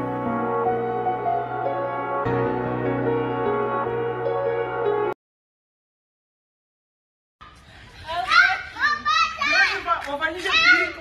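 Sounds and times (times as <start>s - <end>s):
children and adults calling out: 8.1s - 11.0s.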